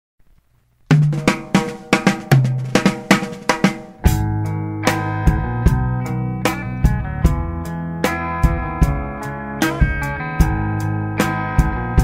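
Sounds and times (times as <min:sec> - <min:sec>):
snare and drums struck: 0:00.9 - 0:04.3.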